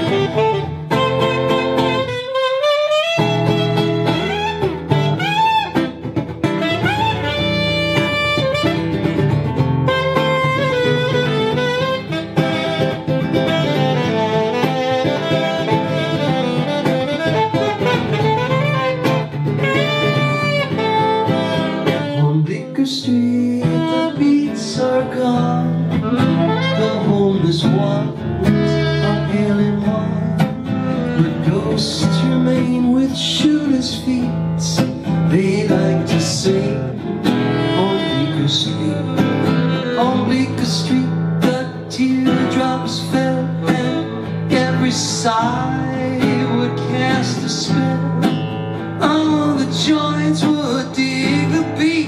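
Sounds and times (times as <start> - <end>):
saxophone melody: 0.0 - 22.6, 23.3 - 33.4, 34.8 - 52.0
strummed acoustic guitar: 0.0 - 52.0.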